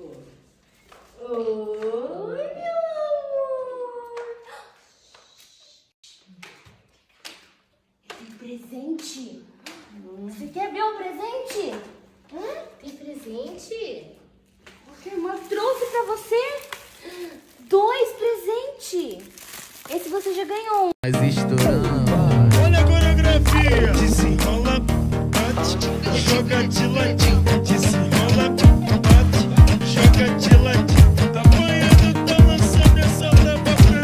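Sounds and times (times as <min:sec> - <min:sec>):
high-pitched voice speaking: 0:21.0 - 0:24.8.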